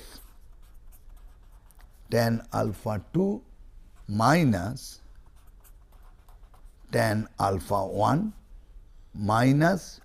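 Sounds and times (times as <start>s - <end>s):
pen scratching on paper: 0.0s - 2.2s, 5.2s - 7.0s.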